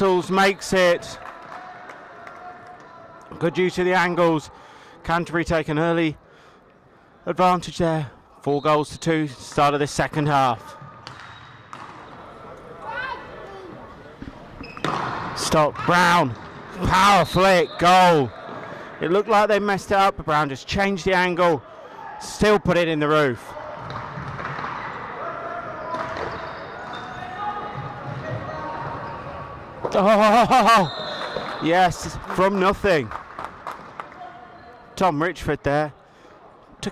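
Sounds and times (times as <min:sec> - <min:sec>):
voices in a reverberant hall: 0:00.0 - 0:08.5, 0:09.2 - 0:36.9
background hubbub: 0:00.0 - 0:36.9.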